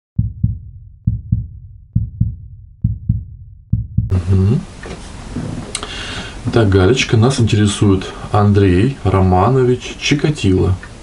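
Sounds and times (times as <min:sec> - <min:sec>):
low double thumps: 0:00.2 - 0:04.6.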